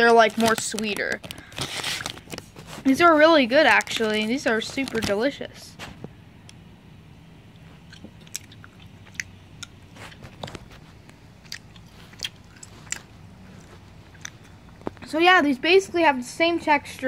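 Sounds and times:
wet mouth clicks: 7.8 - 9.8, 11.4 - 13.1
person chewing candy: 7.8 - 15.0.

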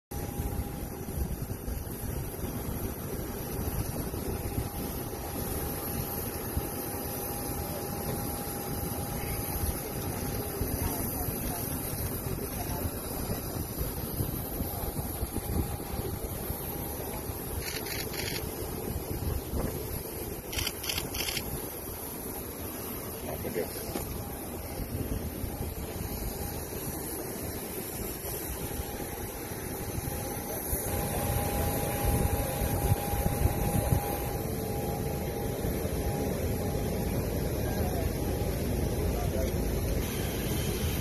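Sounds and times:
faint high hum: 0.1 - 41.0
wind buffeting microphone: 0.2 - 21.9, 24.2 - 36.1
people talking: 7.5 - 17.6, 23.2 - 25.2, 30.3 - 34.4, 37.2 - 40.0.

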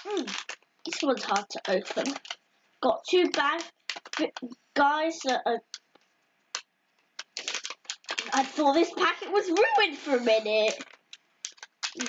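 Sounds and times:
plastic packet crinkling: 0.0 - 12.0.

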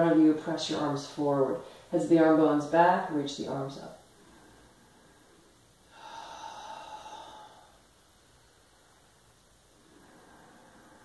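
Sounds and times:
person breathing: 4.0 - 11.0.

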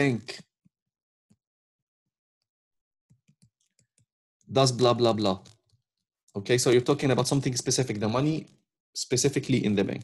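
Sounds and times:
stylus tapping on pen tablet: 3.1 - 4.1.

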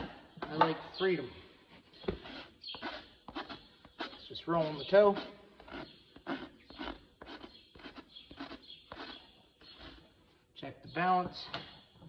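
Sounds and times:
hoof rasp scraping hoof: 1.6 - 10.4.

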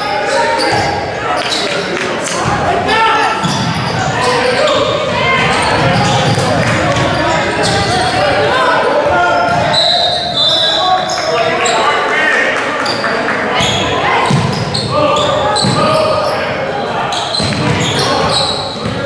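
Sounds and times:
overlapping voices echoing: 0.0 - 19.0
basketball bouncing on wooden floor: 14.3 - 14.6.

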